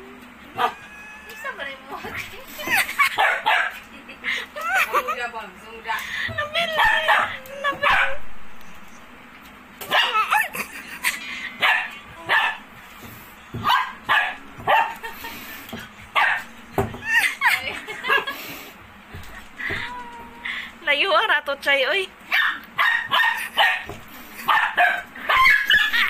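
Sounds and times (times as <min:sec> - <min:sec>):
puppy yapping and whining: 0:00.5 - 0:01.5, 0:06.7 - 0:08.2, 0:09.9 - 0:10.6, 0:16.2 - 0:17.6, 0:22.3 - 0:26.0.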